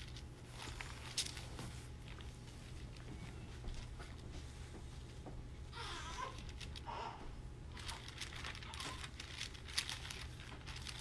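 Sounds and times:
thin pages rustling: 0.0s - 4.3s, 7.7s - 11.0s
low steady hum: 0.0s - 11.0s.

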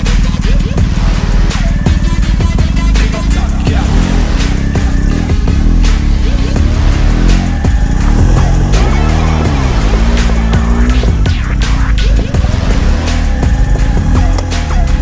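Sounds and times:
motorcycle engine revving: 0.0s - 15.0s
music: 0.0s - 15.0s.

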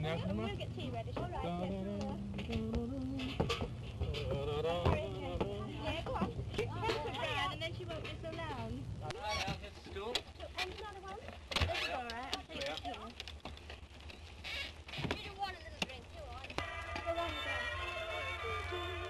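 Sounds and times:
low hum: 0.0s - 9.2s
film clicks and crackles: 5.7s - 17.3s
indistinct voices chattering: 16.5s - 19.0s.

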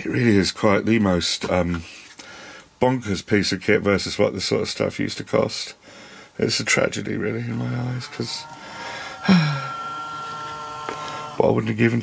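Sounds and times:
motorised screen whine: 7.3s - 11.8s.

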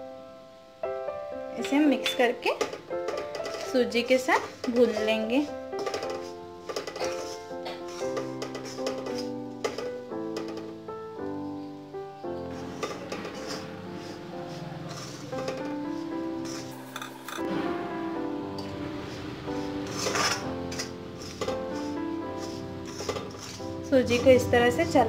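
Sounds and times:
background music melody: 0.0s - 25.0s
metal spoon scraping iron pan: 2.6s - 10.7s, 12.4s - 17.8s, 18.5s - 25.0s.

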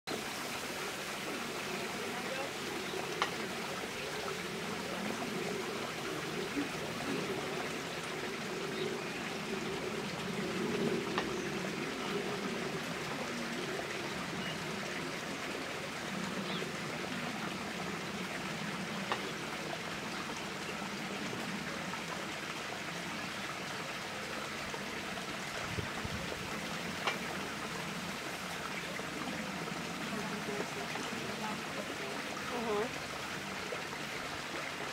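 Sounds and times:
water running and trickling: 0.1s - 34.9s.

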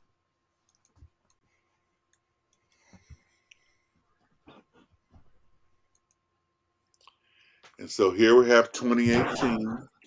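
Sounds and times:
computer mouse clicks: 0.6s - 1.4s, 5.9s - 6.2s.

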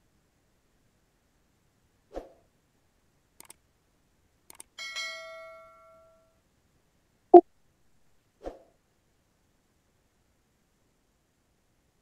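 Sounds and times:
quick clicks: 3.4s - 3.6s, 4.5s - 4.7s.

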